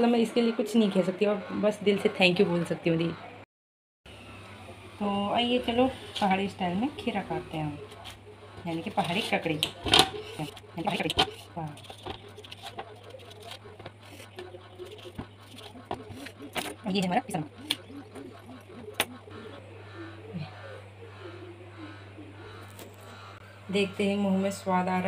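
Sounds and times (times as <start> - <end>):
low steady hum: 4.1 - 25.0
knife cutting and scraping cucumber: 7.9 - 18.2.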